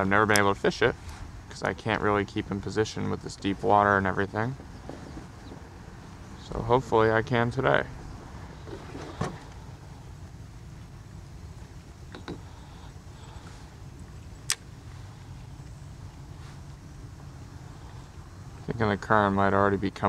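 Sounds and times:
kayak pedal drive whirring: 8.1 - 10.3.

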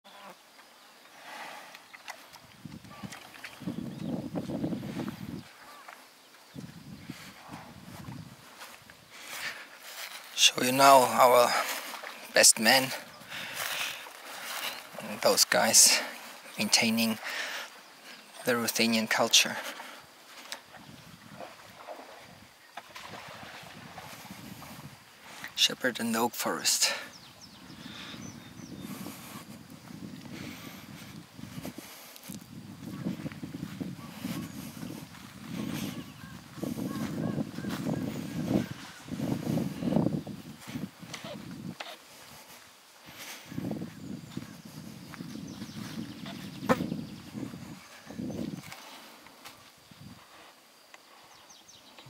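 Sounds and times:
insects buzzing: 0.1 - 52.0
wind on microphone: 2.3 - 10.0, 20.6 - 25.6, 27.1 - 49.1, 49.8 - 50.5.

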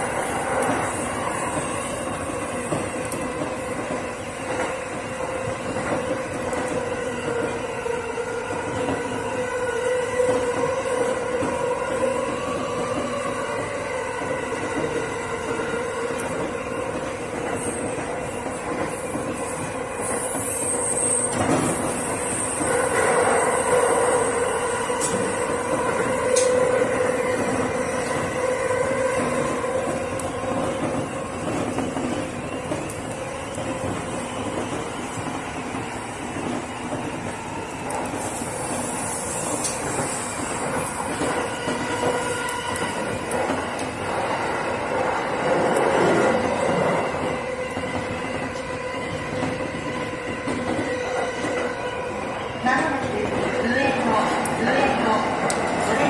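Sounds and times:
train rail running noise: 0.0 - 56.0.

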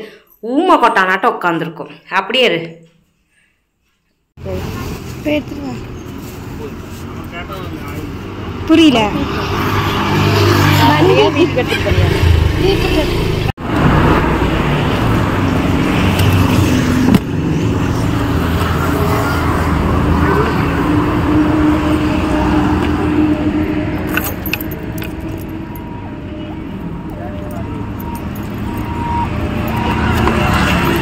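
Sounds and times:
motor vehicle noise: 4.4 - 31.0.

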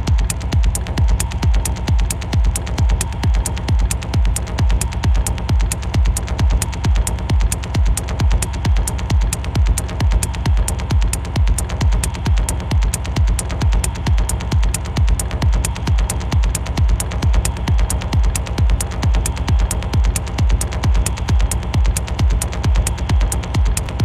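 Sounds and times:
ticking hi-hats: 0.0 - 24.0.

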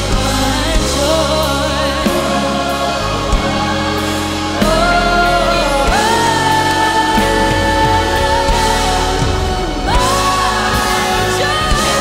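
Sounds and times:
band and strings: 0.0 - 12.0
choir singing: 0.0 - 12.0.

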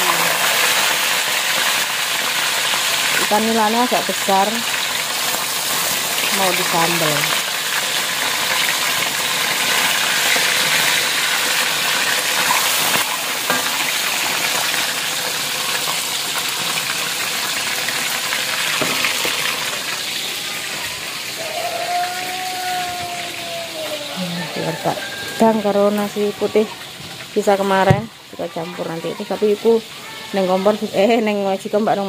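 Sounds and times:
fish deep-frying in hot oil: 0.0 - 32.0.

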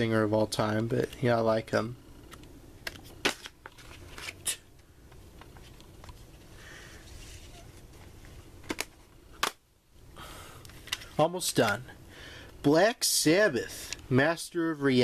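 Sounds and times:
faint room noise: 0.0 - 15.0
plastic cd cases clicking: 2.3 - 4.5, 8.6 - 9.6.

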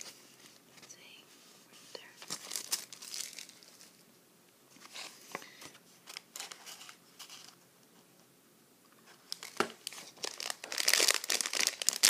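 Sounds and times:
paper and plastic packaging crinkling: 2.2 - 4.0, 4.8 - 7.6, 9.2 - 12.0.

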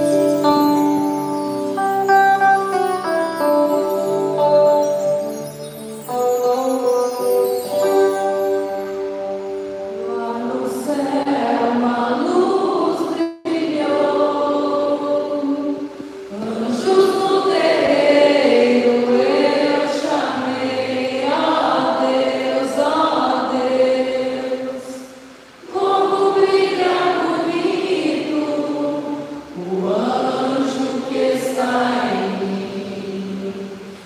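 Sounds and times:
group chanting led by women: 10.2 - 33.9.

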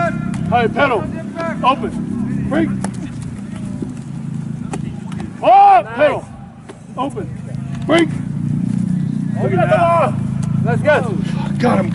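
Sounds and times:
low outdoor rumble: 0.0 - 11.9.

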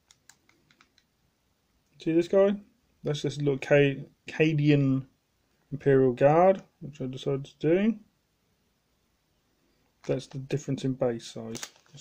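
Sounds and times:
plastic clicks: 0.0 - 1.1.

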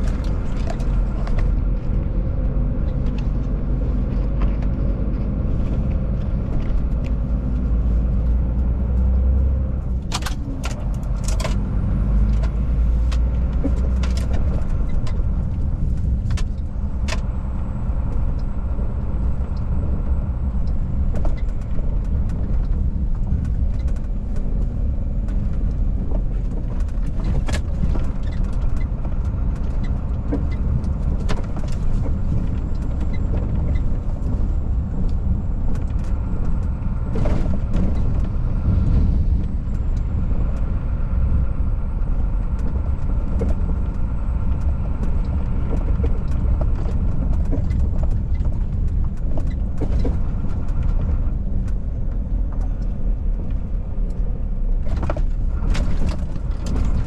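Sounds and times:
sharp clicks and rattles: 0.0 - 9.1, 9.7 - 57.0
road noise: 0.0 - 57.0
truck engine rumble: 0.0 - 57.0.

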